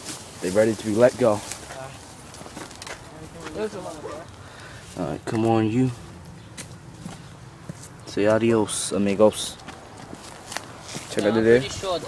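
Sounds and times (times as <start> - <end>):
footsteps in leaf litter: 0.0 - 6.0, 9.6 - 12.0.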